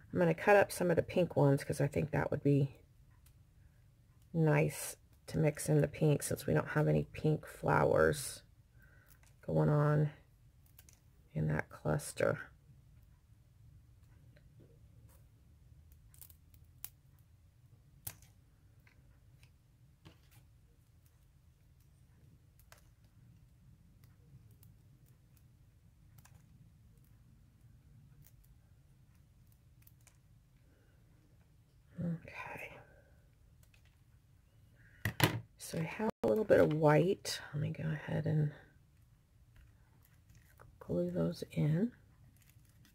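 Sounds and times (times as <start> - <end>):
low steady hum: 0.0 - 42.9.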